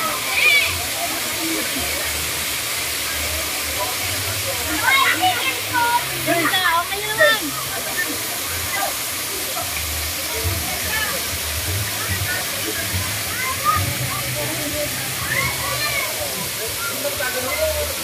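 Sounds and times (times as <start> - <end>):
waterfall rushing: 0.0 - 18.0.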